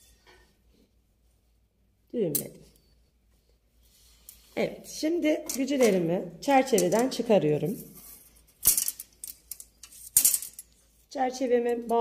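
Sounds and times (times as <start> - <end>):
wire heddles clinking on metal: 8.6 - 10.8.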